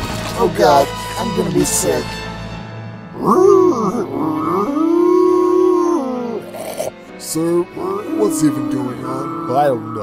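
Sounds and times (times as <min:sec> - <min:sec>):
robot howl: 0:03.2 - 0:06.9, 0:07.8 - 0:10.0.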